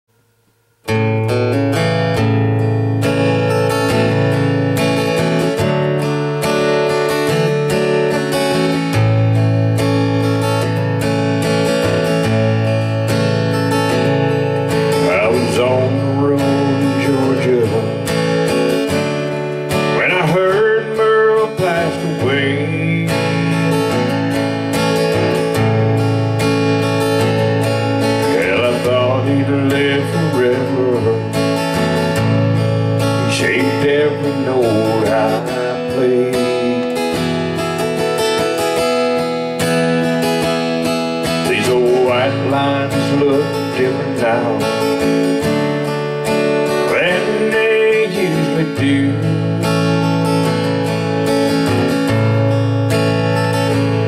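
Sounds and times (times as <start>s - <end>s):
acoustic guitar strumming: 0.1s - 54.0s
sliding guitar notes: 0.8s - 54.0s.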